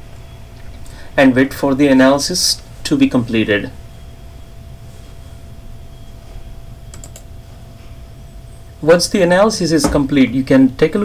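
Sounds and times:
low steady room hum: 0.0 - 11.0
sharp clicks of computer keys: 6.9 - 7.3.

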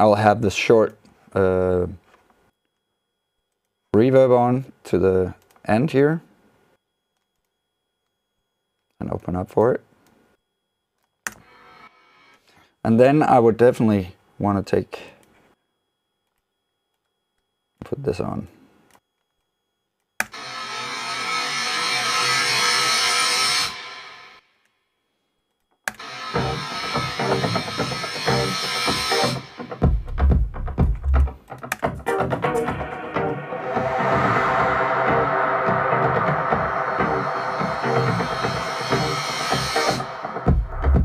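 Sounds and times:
noise uplifter sweep: 26.0 - 29.9, 31.6 - 41.0
drums: 26.0 - 41.0
heavy kick and bass: 26.4 - 41.0.

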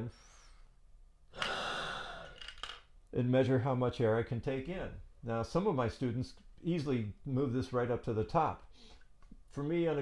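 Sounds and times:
breath hissing through a hose: 1.4 - 2.3.

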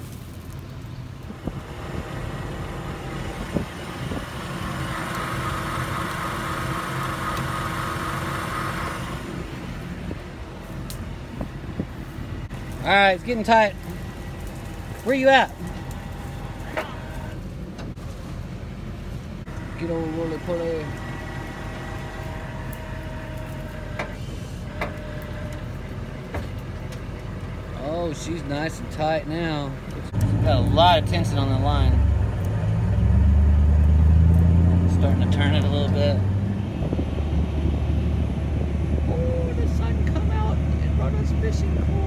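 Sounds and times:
tow truck engine rumbling: 0.0 - 42.0.

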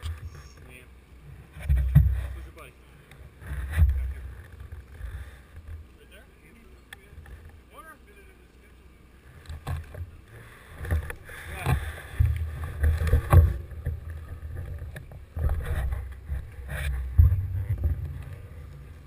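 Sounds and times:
bike knocks and rattles: 1.6 - 2.4, 10.8 - 19.0
bicycle rolling over grass: 9.2 - 19.0
wind rumbling on microphone: 9.3 - 19.0.

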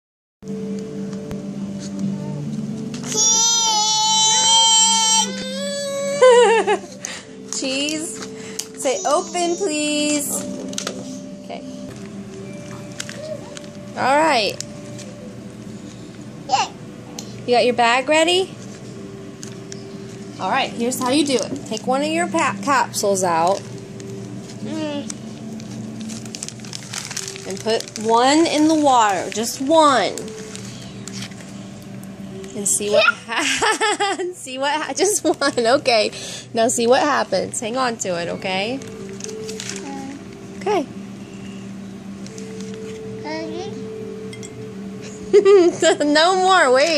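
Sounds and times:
toddler squealing: 3.1 - 6.3, 8.8 - 10.0
plastic bag crinkling: 11.9 - 16.2, 18.5 - 32.6, 38.7 - 40.4.

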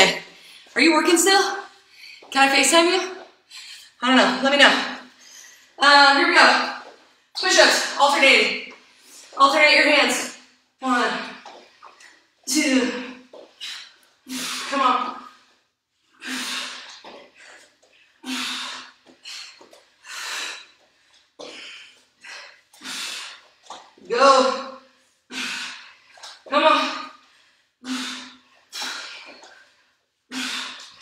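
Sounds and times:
woman breathing hard: 15.3 - 23.7.

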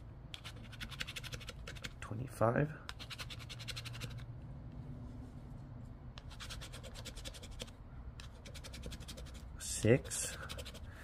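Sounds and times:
scratching lottery ticket coating: 0.4 - 2.0, 3.0 - 4.2, 6.2 - 11.0.

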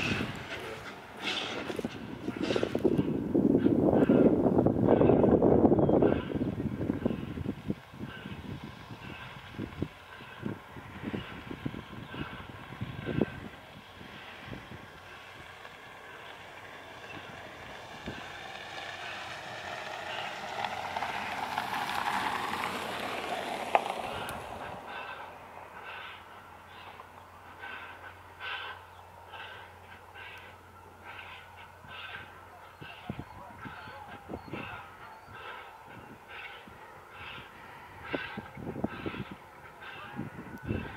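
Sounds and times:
locomotive noisy burst: 0.0 - 40.9
locomotive steady sound: 0.0 - 40.9.

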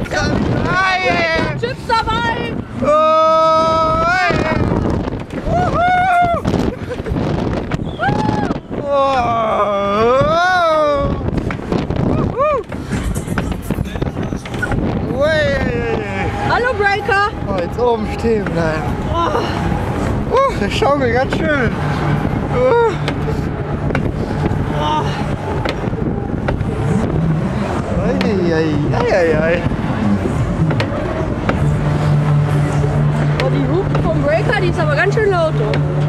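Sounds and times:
fairground ride rushing noise: 0.0 - 36.0
steady low hum: 0.0 - 36.0
wind buffeting microphone: 0.0 - 36.0.

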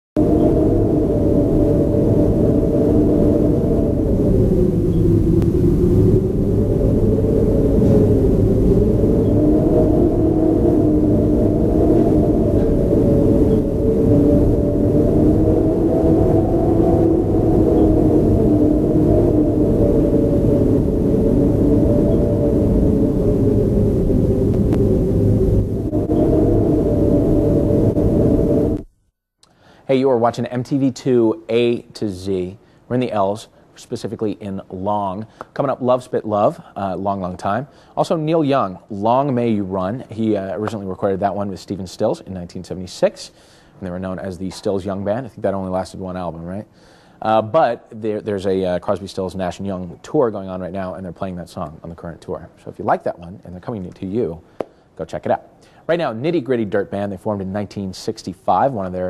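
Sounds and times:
wavering droning tones: 0.2 - 28.9
low rumble: 0.2 - 29.1.

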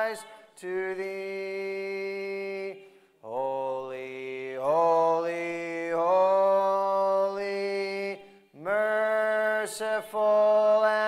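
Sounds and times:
congregation singing a hymn: 0.0 - 11.0.

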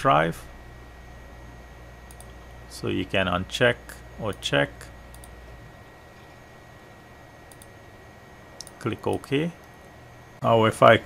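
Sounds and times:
computer mouse clicks: 2.1 - 2.4, 5.1 - 5.4, 7.5 - 7.7.

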